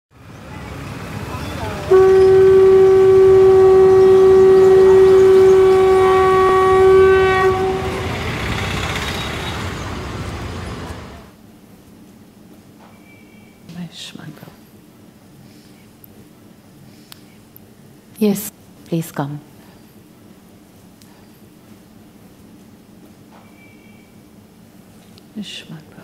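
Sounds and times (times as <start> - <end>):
busy street noise: 0.1 - 11.4
long horn blast: 1.6 - 11.3.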